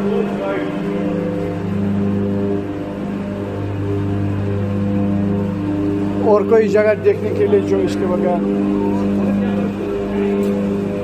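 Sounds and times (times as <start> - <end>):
deep electrical hum: 0.0 - 11.0.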